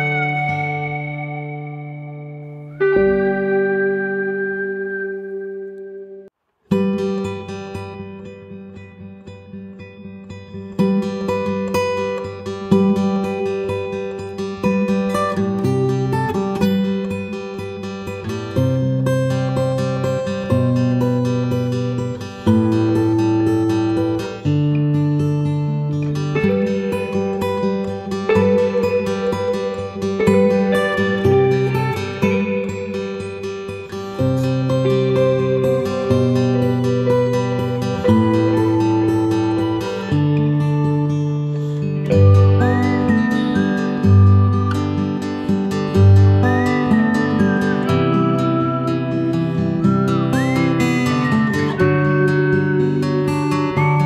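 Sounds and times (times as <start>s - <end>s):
acoustic guitar plucking and strumming: 0.0s - 54.0s.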